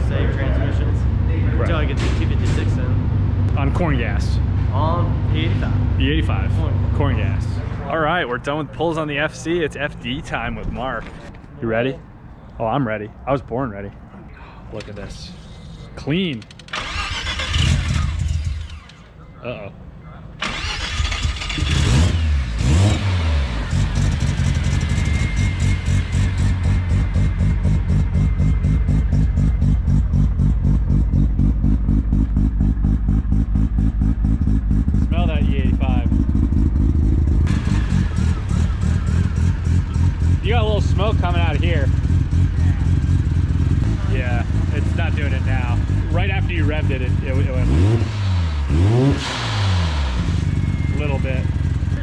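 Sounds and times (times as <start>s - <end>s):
car engine starting and idling: 0.0s - 11.4s, 14.8s - 19.4s, 20.4s - 52.0s.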